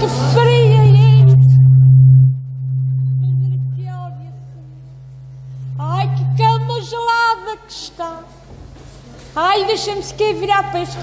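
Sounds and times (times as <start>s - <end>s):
loud low drone: 0.0s - 7.2s.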